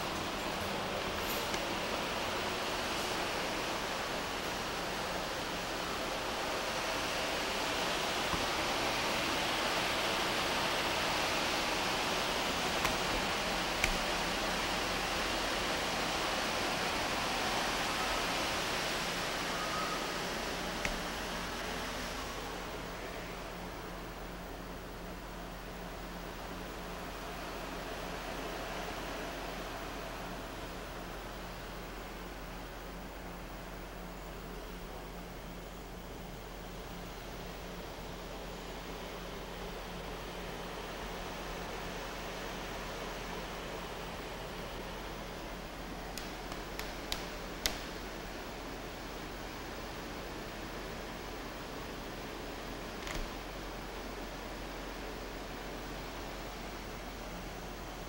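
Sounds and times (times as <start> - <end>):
faint low hum: 0.0 - 58.0
steady hiss: 0.0 - 58.0.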